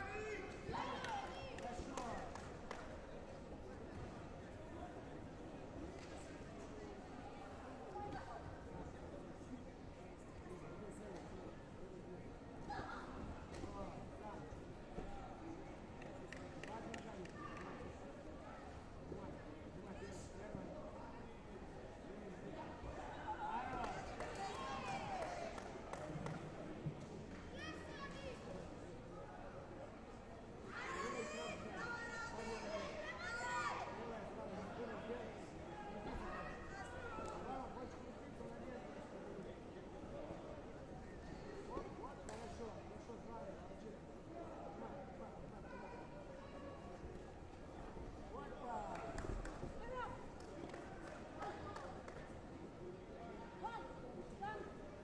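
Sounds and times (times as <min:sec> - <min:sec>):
murmur of distant voices: 0:00.0 - 0:55.0.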